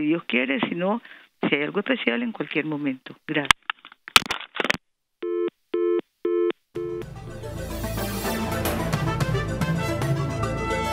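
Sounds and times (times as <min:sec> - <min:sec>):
telephone busy tone beeps: 0:05.2 - 0:07.0.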